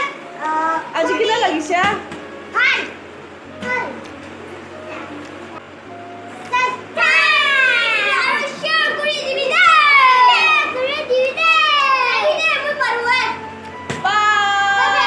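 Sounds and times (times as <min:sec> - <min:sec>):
children calling sing-song: 0:02.3 - 0:15.0
children laughing: 0:07.0 - 0:13.2.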